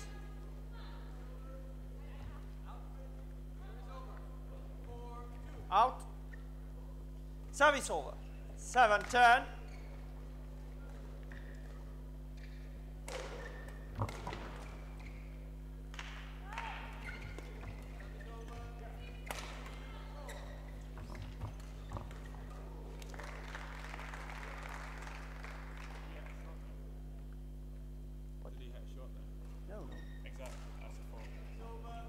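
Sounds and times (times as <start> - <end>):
electrical hum: 0.0 - 32.0
shuttlecock hit with rackets: 12.4 - 14.7.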